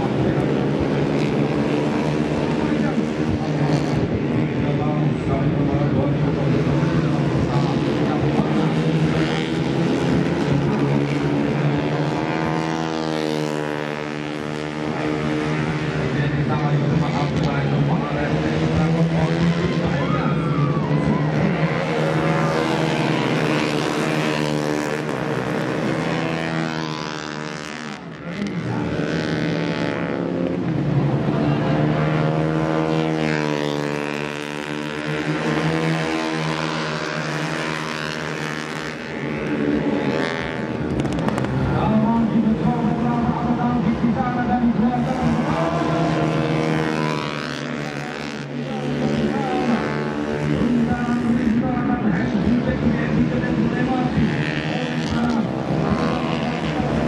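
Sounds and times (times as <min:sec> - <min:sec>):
motorcycle engines revving: 0:00.0 - 0:57.0.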